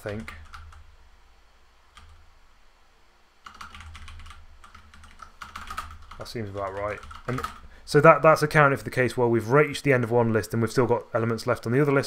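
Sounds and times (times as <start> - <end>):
computer keyboard typing: 0.0 - 0.8, 1.9 - 2.2, 3.4 - 7.7
low steady hum: 0.0 - 12.0.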